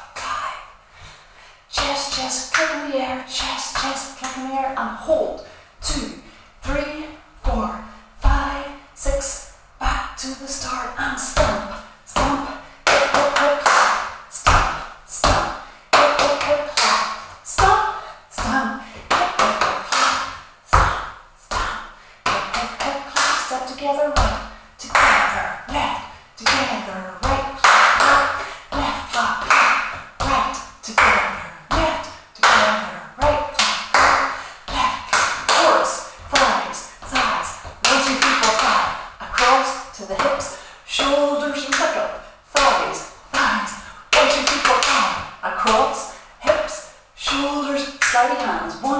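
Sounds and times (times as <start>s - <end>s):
hand claps and body slaps: 27.6s - 28.3s, 29.1s - 30.0s.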